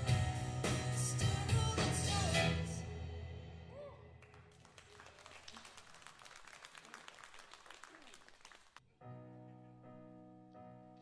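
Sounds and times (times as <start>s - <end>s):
faint audience applause: 4.2s - 8.8s.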